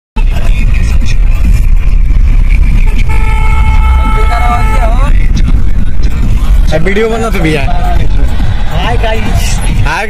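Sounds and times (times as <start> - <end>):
car driving rumble: 0.2 - 10.0
vehicle horn: 2.8 - 5.2.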